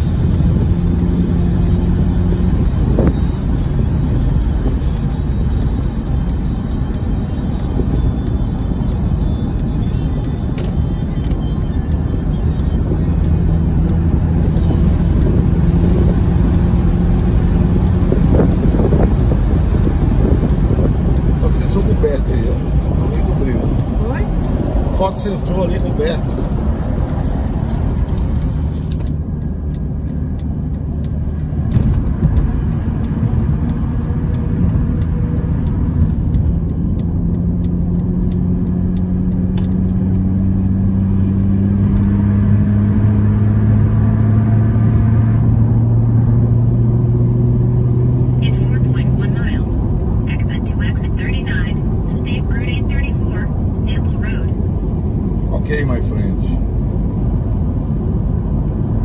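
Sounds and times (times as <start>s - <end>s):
engine hum rising in pitch: 0.0s - 59.0s
road noise rumble inside car: 0.0s - 59.0s.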